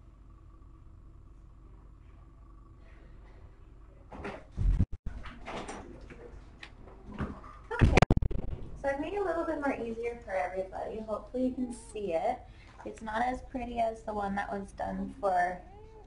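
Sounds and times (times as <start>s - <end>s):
low room hum: 0.0s - 16.0s
loud knocks and bumps: 4.2s - 5.7s, 7.1s - 8.8s.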